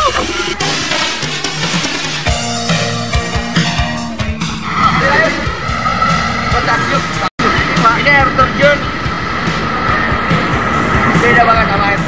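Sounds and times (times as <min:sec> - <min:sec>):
background music: 0:00.0 - 0:12.0
waterfall rushing: 0:04.4 - 0:12.0
man talking: 0:06.5 - 0:08.9.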